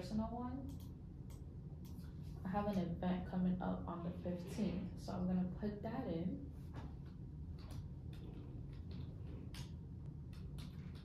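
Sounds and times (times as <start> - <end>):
low room hum: 0.0 - 11.0
keyboard keys clicking: 7.6 - 11.0.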